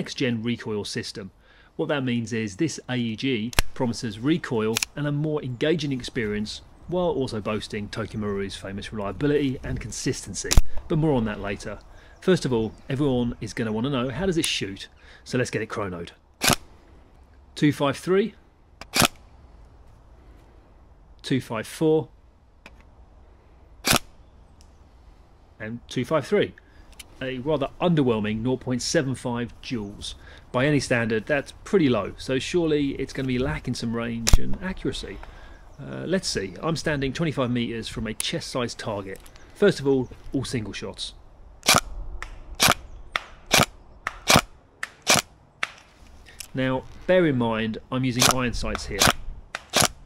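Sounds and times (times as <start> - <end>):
airsoft gun shot: 16.4 - 16.6, 42.6 - 45.8.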